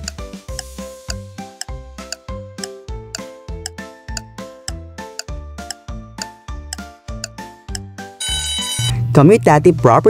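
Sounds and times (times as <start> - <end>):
light background music: 0.0 - 10.0
alarm clock bell ringing: 8.2 - 8.9.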